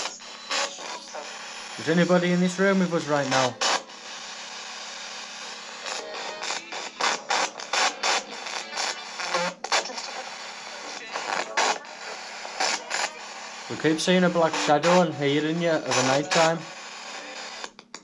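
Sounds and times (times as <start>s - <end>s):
choppy bursts of radio sound: 0.0s - 4.5s, 5.4s - 17.7s
static hiss: 0.0s - 17.8s.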